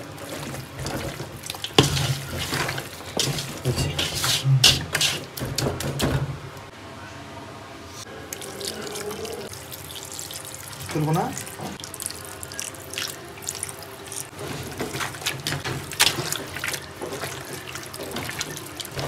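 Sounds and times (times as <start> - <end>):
hand kneading wet meat: 0.0 - 4.4, 8.4 - 19.0.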